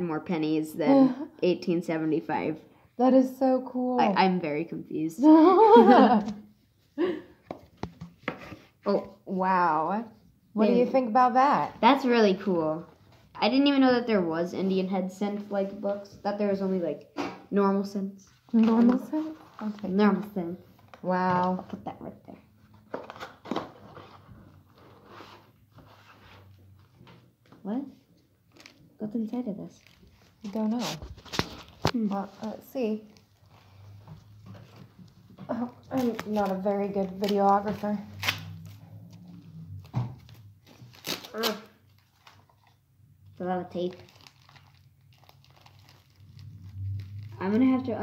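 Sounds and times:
rustling handling noises: 18.2 - 21.8, 22.6 - 48.0
crinkling of wrapping and tape: 18.2 - 27.1, 28.1 - 48.0.

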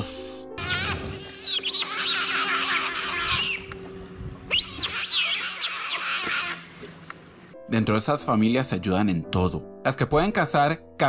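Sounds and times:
otters squealing: 0.6 - 6.8.

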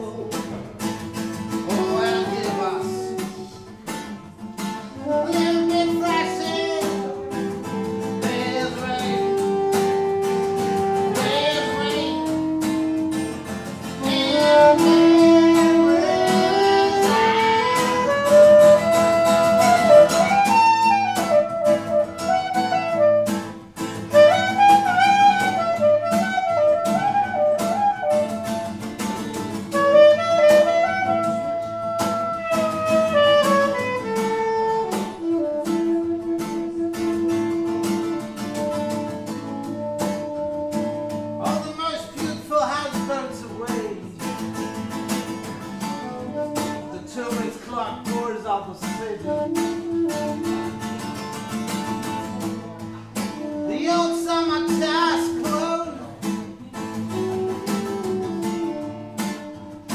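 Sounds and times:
plucked acoustic guitar: 0.0 - 59.9
saxophone melody: 0.9 - 42.8, 44.4 - 47.4, 49.1 - 59.9.

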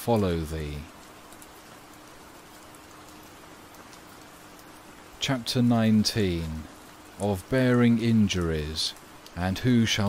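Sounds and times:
faint steady hum: 0.0 - 10.0
steady rain falling: 0.0 - 10.0.

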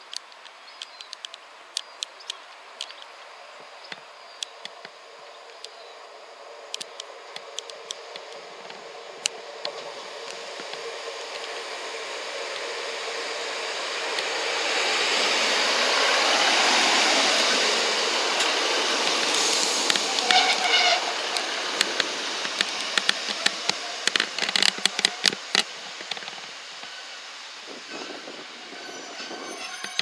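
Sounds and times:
diesel train passing: 1.5 - 30.0
clicks and ticks: 6.7 - 11.6
brake squeal: 7.3 - 25.6, 26.2 - 30.0.

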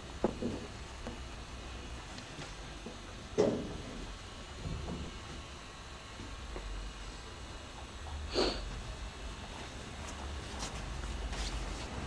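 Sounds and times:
steady low hum: 0.0 - 12.0
even hiss: 8.2 - 8.9.

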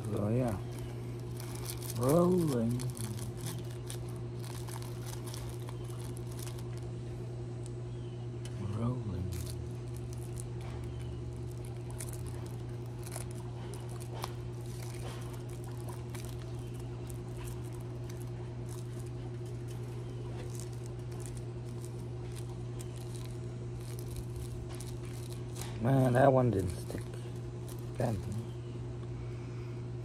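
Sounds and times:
rolling paper crinkling: 0.0 - 7.2, 8.7 - 28.7
steady low hum: 0.0 - 30.0.

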